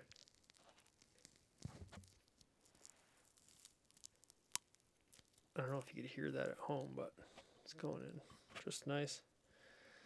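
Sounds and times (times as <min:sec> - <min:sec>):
soft wet crackles: 0:00.0 - 0:08.7.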